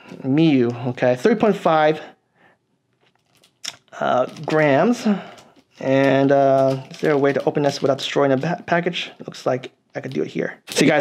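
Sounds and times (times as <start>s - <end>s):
plastic package crinkling: 3.0s - 8.6s.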